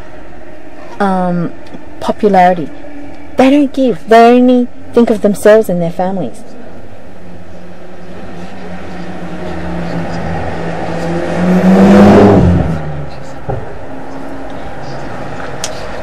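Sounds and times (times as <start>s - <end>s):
steady low hum: 0.0s - 16.0s
motor vehicle passing by: 6.3s - 16.0s.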